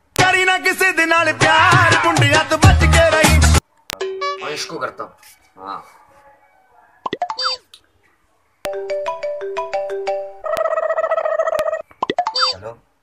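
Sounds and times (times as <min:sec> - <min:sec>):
phone ringtone beeps: 0:04.0 - 0:04.6, 0:07.2 - 0:07.6, 0:08.7 - 0:10.8, 0:12.1 - 0:12.6
popping sound effect: 0:07.1 - 0:07.6, 0:11.6 - 0:12.6.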